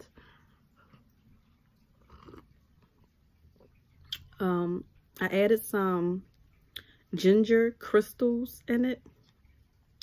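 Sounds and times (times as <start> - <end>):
sipping and swallowing: 0.8 - 4.4.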